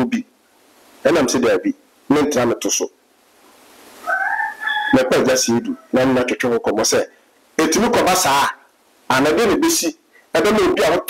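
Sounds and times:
rooster crowing: 4.0 - 6.0.

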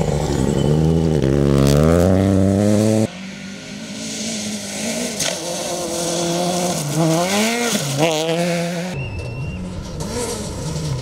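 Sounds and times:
rally car engine revving: 0.0 - 11.0.

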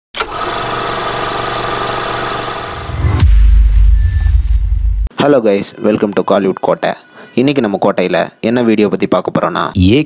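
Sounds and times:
deep low boom: 2.9 - 5.1.

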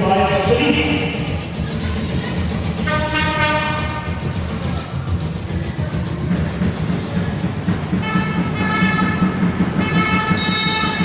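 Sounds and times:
sports hall din: 0.0 - 11.0
horn blast: 2.8 - 4.2, 8.0 - 11.0.

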